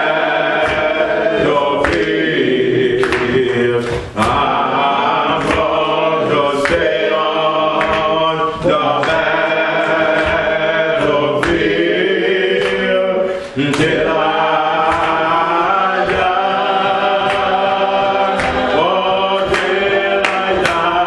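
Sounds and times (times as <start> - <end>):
man singing a hymn: 0.0 - 21.0
other voices singing: 0.0 - 21.0
sharp percussive hits: 0.0 - 21.0.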